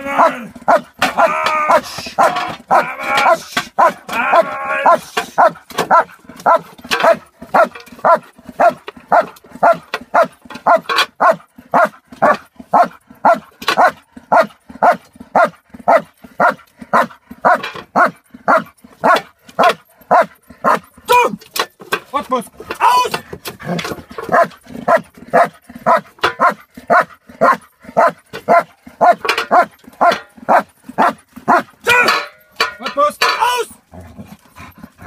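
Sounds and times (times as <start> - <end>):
dog barking rhythmically: 0.0 - 21.4, 22.3 - 33.8.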